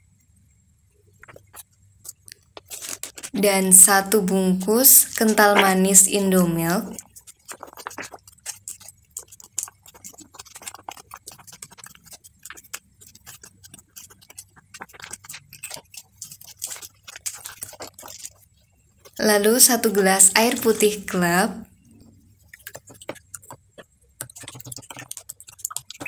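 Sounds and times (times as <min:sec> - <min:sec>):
plastic pouch crinkling: 0:02.6 - 0:03.4, 0:14.0 - 0:18.4.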